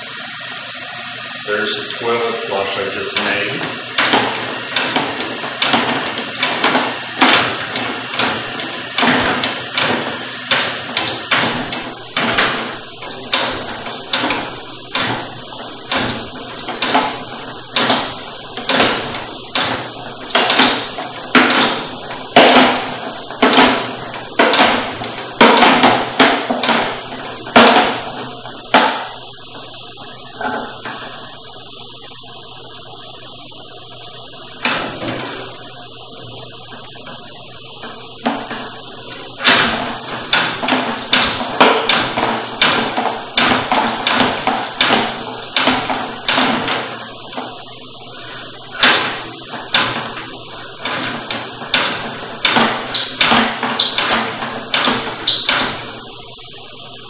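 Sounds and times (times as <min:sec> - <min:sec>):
steady hiss: 0:00.0 - 0:57.0
cable knocking and clacking: 0:03.1 - 0:31.3, 0:34.6 - 0:56.2.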